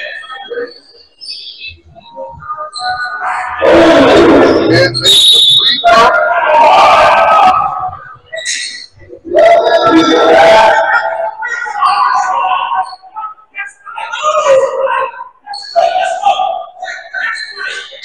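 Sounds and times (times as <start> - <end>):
people shouting: 3.2 - 13.0
referee's whistle: 4.5 - 6.1.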